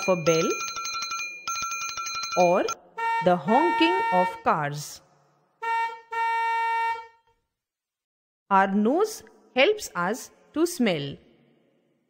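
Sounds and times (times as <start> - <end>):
car horn honking: 2.9 - 4.4, 5.6 - 7.2.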